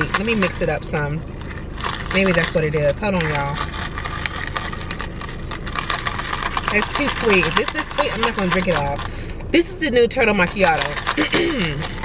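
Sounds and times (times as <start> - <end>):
ice cubes clicking in cup: 0.0 - 9.2, 10.3 - 12.0
low hum inside car: 0.0 - 12.0.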